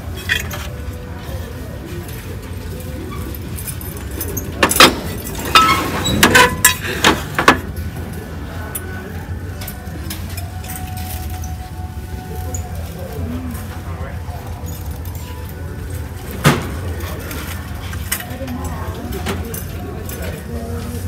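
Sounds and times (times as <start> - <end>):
low steady hum: 0.0 - 21.0
store background music: 0.0 - 21.0.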